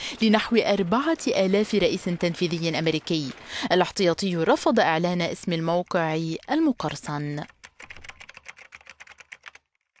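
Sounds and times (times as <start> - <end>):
fast typing on keyboard: 6.9 - 10.0.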